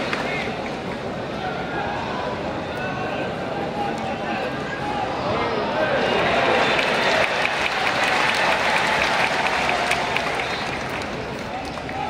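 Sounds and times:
crowd clapping: 0.0s - 0.5s, 6.2s - 12.0s.

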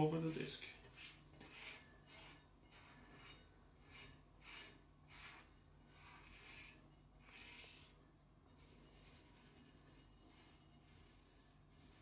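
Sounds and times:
cardboard scraping glue on metal disc: 0.8s - 8.0s.

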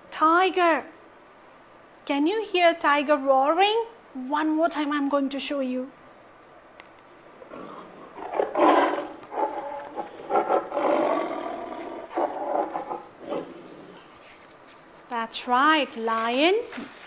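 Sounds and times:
recorded tiger roar through small speaker: 7.5s - 14.0s.

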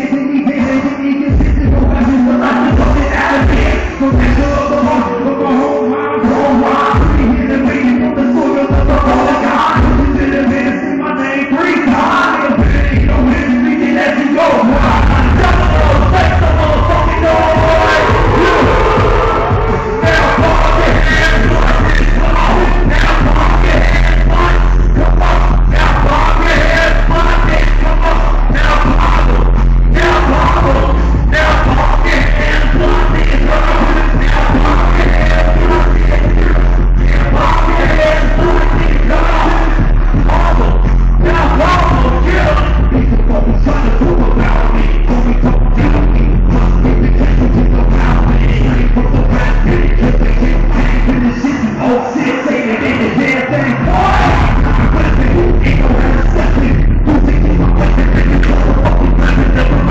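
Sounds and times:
heavy bass beat: 0.0s - 5.6s, 6.2s - 10.8s, 11.8s - 51.8s, 52.4s - 59.9s
rapped vocals: 0.0s - 59.9s
crowd voices: 13.5s - 59.9s.

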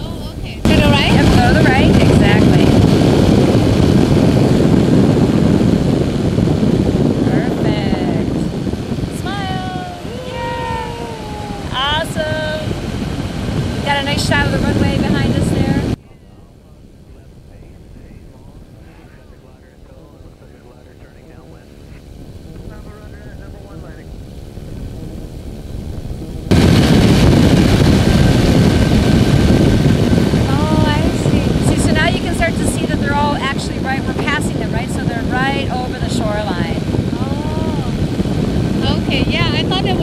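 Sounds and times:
ultralight aircraft engine and propeller: 0.0s - 40.0s.

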